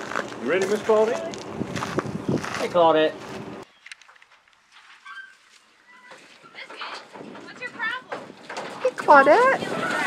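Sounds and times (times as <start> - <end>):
hooves knocking and shuffling: 0.0 - 10.0.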